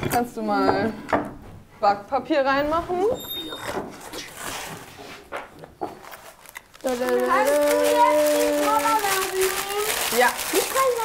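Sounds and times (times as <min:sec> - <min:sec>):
baking paper rustling: 0:05.9 - 0:11.0.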